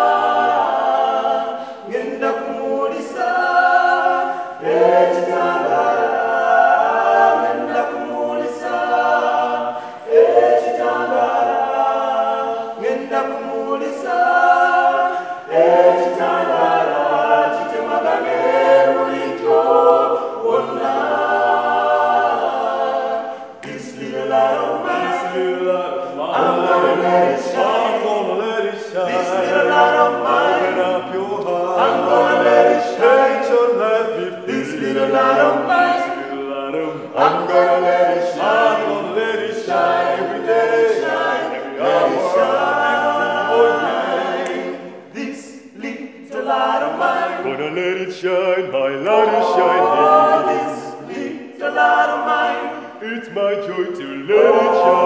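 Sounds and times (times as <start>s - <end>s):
vocal group singing in harmony: 0.0s - 55.0s
hand claps: 23.6s - 23.9s.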